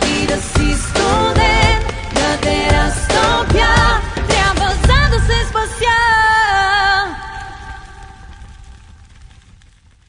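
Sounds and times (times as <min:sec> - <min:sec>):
pop song ending chord: 0:00.0 - 0:07.2.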